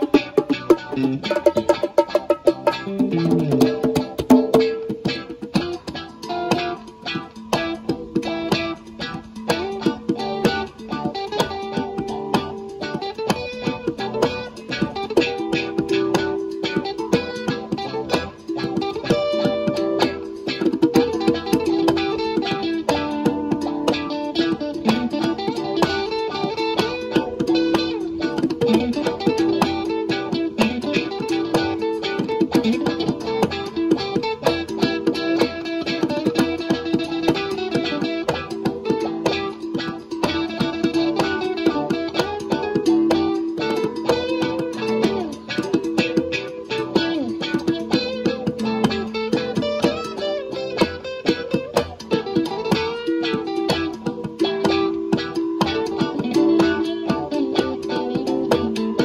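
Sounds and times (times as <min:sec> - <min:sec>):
guitar plucking notes: 0:00.0 - 0:59.0.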